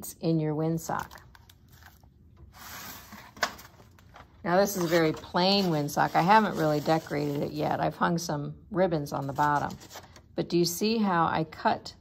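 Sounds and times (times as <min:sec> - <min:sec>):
paper rustling: 0:01.0 - 0:07.6, 0:09.2 - 0:10.2.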